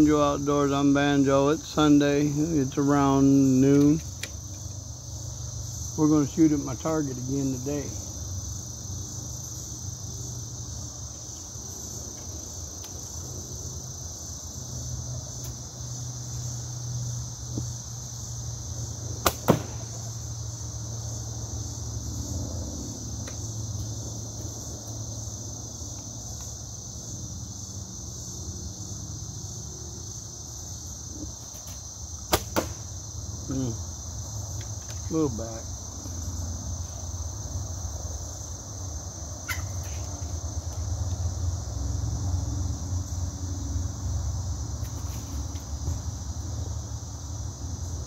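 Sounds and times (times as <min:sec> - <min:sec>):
crickets chirring: 0:00.0 - 0:48.0
bow shot snapping: 0:19.2 - 0:20.0, 0:32.3 - 0:32.9.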